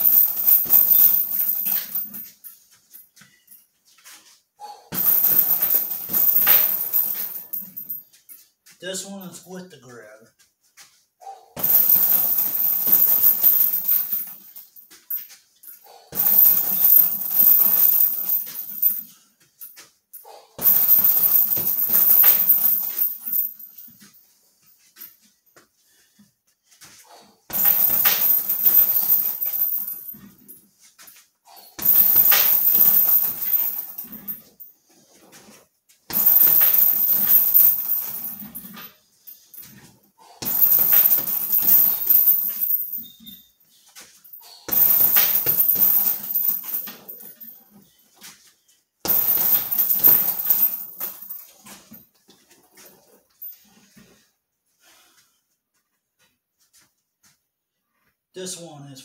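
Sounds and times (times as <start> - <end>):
chain rattling: 0.0 - 4.2, 4.9 - 8.8, 11.6 - 24.1, 27.5 - 48.0, 49.0 - 54.2
strikes on heavy bag: 11.3 - 14.2, 16.1 - 18.3, 20.6 - 22.9, 27.5 - 29.8, 31.8 - 34.4, 36.1 - 38.7, 40.4 - 42.4, 44.7 - 46.4, 49.0 - 50.6.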